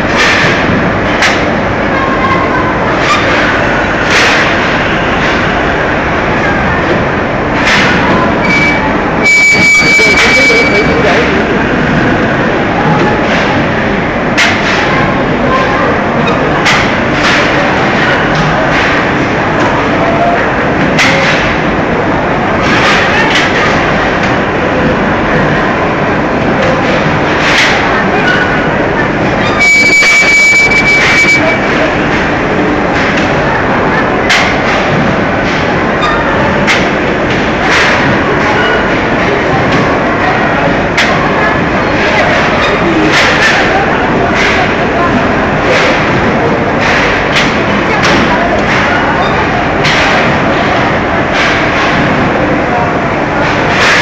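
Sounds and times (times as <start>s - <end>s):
high steady tone: 29.6s - 31.7s.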